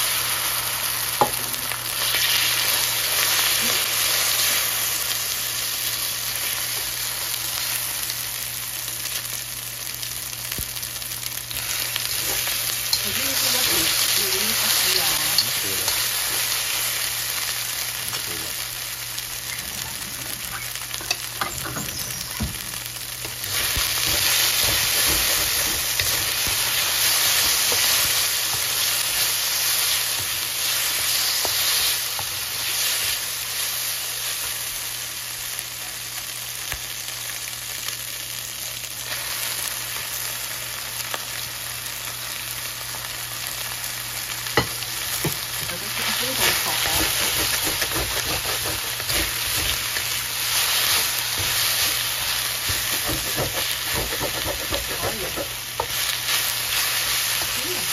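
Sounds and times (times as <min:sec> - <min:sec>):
shrimp sizzling in hot oil: 0:00.0 - 0:57.9
utensils clicking against wok: 0:52.7 - 0:56.0.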